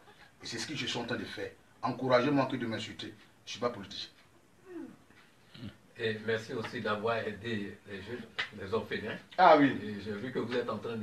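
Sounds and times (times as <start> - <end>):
low murmured hmm: 4.7 - 5.8.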